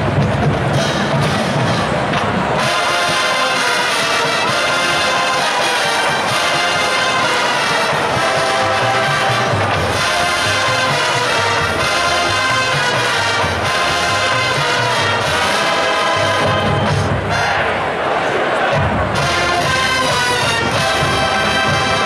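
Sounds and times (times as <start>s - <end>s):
steady drum beat: 0.0s - 17.8s, 18.6s - 22.0s
marching band playing jazz: 0.0s - 22.0s
trombones and trumpets: 0.0s - 22.0s.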